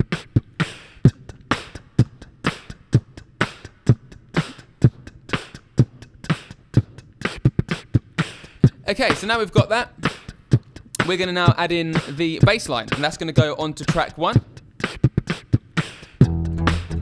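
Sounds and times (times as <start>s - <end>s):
beatboxing into microphone: 0.0s - 17.0s
looped beatboxed drum pattern: 0.0s - 17.0s
mouth hi-hat ticks: 0.0s - 17.0s.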